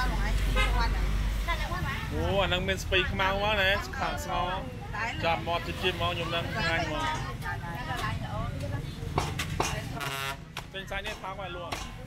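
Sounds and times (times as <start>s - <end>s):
people talking: 3.0s - 10.1s.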